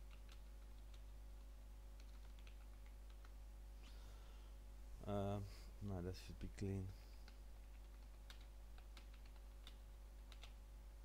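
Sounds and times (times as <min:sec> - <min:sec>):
faint keyboard typing: 0:00.0 - 0:03.4, 0:06.4 - 0:10.6.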